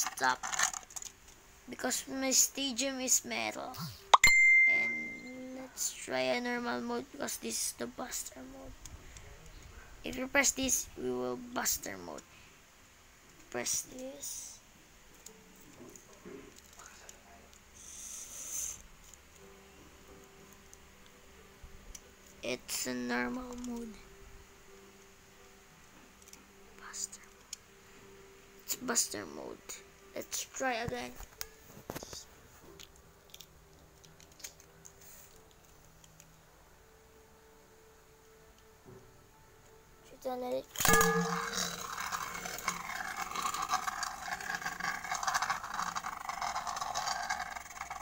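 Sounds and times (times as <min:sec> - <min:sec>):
plastic toy handling rustle: 0:00.0 - 0:01.4, 0:22.7 - 0:23.9, 0:30.8 - 0:36.3, 0:41.7 - 0:48.0
faint low hum: 0:00.0 - 0:48.0.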